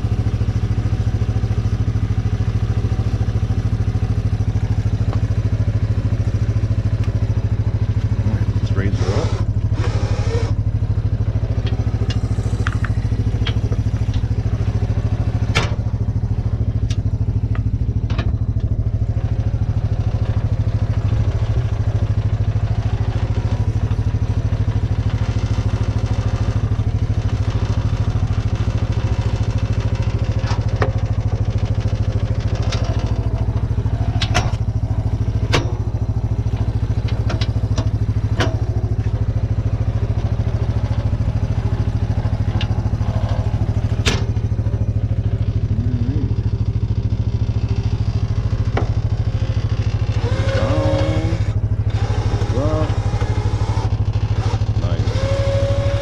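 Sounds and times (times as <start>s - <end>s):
atv engine idling: 0.0s - 56.0s.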